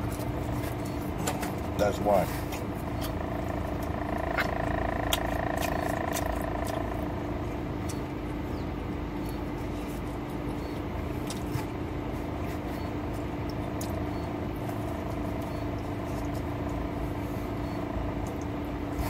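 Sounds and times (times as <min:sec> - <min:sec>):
car cabin hum and rumble: 0:00.0 - 0:19.0
faint chewing clicks: 0:02.5 - 0:11.8, 0:12.7 - 0:17.0, 0:17.6 - 0:18.8
constant low tone: 0:02.5 - 0:19.0.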